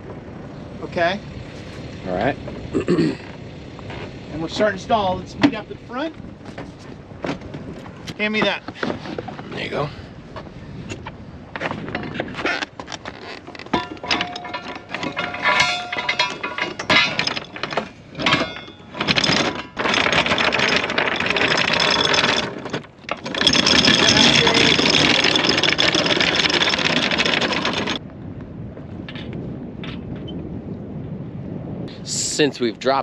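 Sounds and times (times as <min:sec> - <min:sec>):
anchor chain clanking and rattling: 0:03.8 - 0:09.9, 0:11.5 - 0:28.0.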